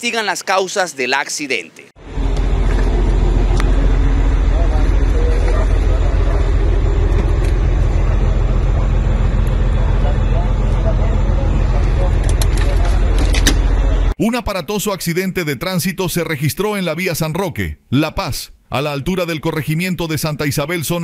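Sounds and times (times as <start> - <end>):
loud low rumble: 2.0 - 14.2
faint voices: 4.3 - 14.1.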